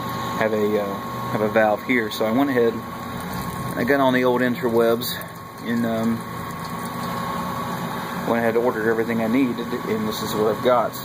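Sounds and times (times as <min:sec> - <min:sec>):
equipment mechanical hum: 0:00.0 - 0:11.0.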